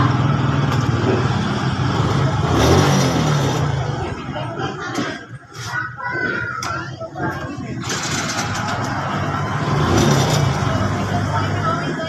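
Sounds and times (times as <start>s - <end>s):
small motorcycle engine running: 0.0s - 4.3s, 7.8s - 12.0s.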